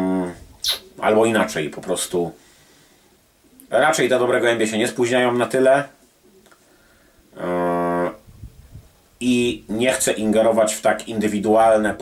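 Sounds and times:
man's hesitation sound: 0:00.0 - 0:01.3.

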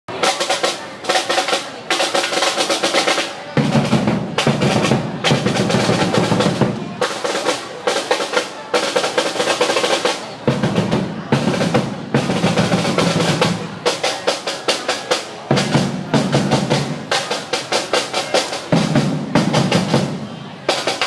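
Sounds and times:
snare drums rolling: 0:00.1 - 0:21.0.

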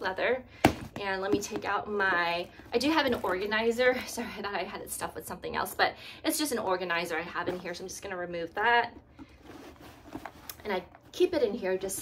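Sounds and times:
fabric rustling and sliding: 0:09.3 - 0:10.6.

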